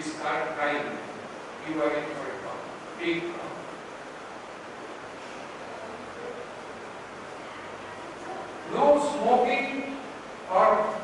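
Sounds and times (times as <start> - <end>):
faint low hum: 0.0 - 11.0
steady hiss: 0.0 - 11.0.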